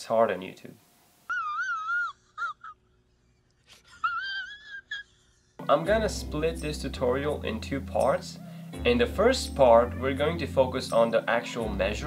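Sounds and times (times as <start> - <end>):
man crying in falsetto wail: 1.3 - 5.4.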